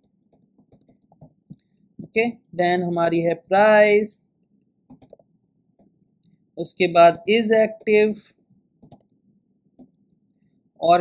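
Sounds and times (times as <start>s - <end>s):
person speaking: 2.0s - 4.2s, 6.6s - 8.3s
computer keyboard clicks: 4.9s - 5.2s, 8.8s - 9.1s.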